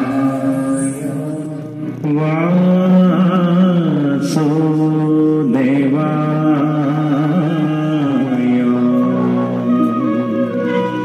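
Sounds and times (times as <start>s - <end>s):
steady drone: 0.0s - 4.6s
person singing long notes: 0.0s - 11.0s.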